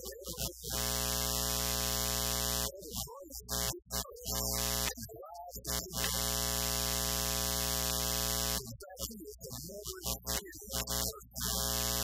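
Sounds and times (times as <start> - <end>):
man talking: 0.0 - 0.8, 2.7 - 6.1, 8.6 - 11.6
loud electronic buzz: 0.0 - 12.0.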